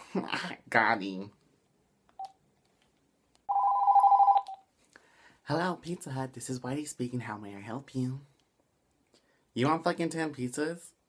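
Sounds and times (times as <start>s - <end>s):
phone handset beep: 3.5s - 4.6s
phone ringing with electronic warble: 3.5s - 4.6s.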